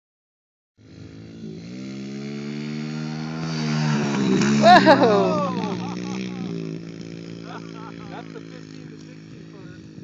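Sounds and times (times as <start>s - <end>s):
dirt bike engine running: 0.8s - 10.0s.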